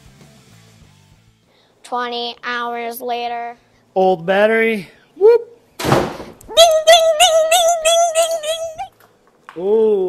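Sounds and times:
person speaking: 0:06.4 - 0:08.9.

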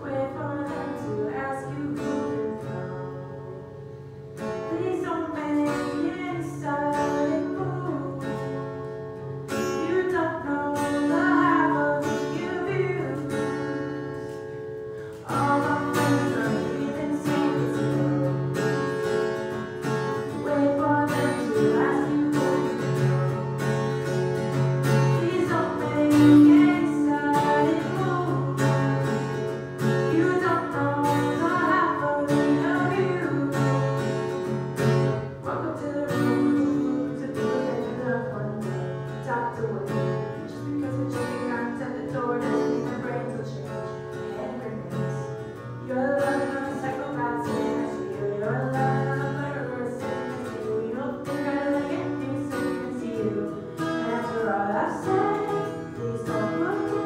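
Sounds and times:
strummed acoustic guitar: 0:00.0 - 0:57.0
woman singing: 0:00.0 - 0:57.0.

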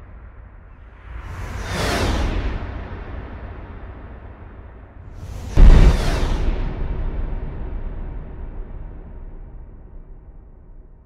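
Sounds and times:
whoosh sound effect: 0:05.3 - 0:10.2
low music drone: 0:05.5 - 0:11.0.

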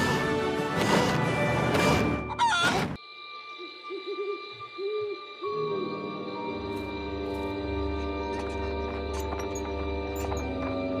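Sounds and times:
ambient music drone: 0:03.0 - 0:11.0
owl hooting: 0:03.4 - 0:06.0.

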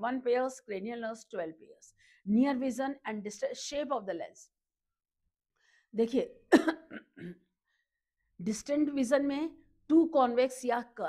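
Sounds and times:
woman coughing: 0:06.5 - 0:07.5.

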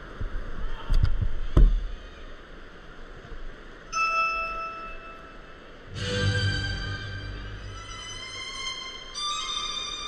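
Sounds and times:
bell-like chime: 0:04.0 - 0:05.5.

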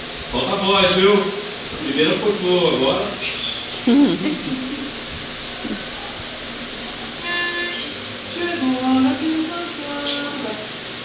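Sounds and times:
room noise: 0:00.0 - 0:11.0
instrumental melody: 0:06.8 - 0:09.1.

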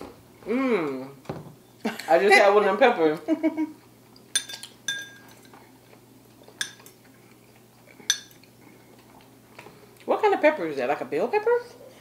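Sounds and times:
metal spoon clinking on ceramic bowl: 0:04.4 - 0:05.5, 0:06.6 - 0:06.9, 0:08.1 - 0:08.4.

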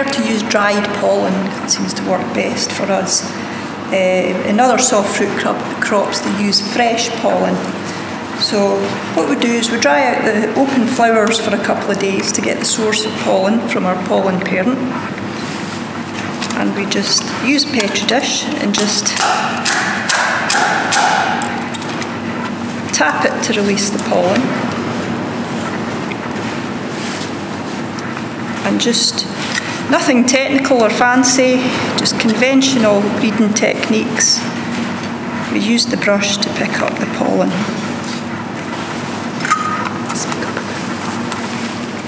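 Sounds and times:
steady background hum: 0:00.0 - 0:42.0.

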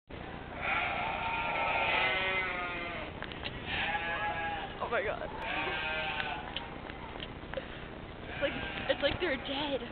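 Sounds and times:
sheep bleating: 0:00.5 - 0:06.5, 0:08.3 - 0:09.5.

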